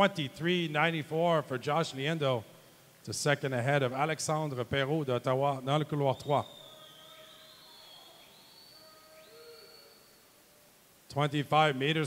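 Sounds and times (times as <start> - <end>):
faint steady tones: 0.0 - 12.0
high rising whistle-like tone: 6.2 - 10.4.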